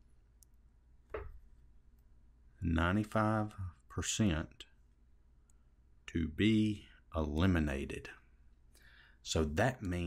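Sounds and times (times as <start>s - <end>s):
man speaking: 2.6s - 4.8s, 6.0s - 8.3s, 9.2s - 10.0s.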